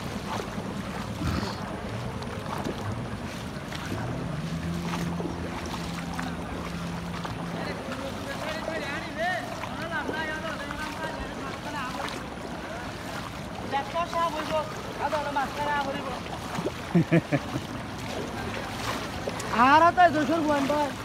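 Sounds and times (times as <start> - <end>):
water splashing around wading people: 0.0 - 21.0
voices in background: 1.1 - 16.8.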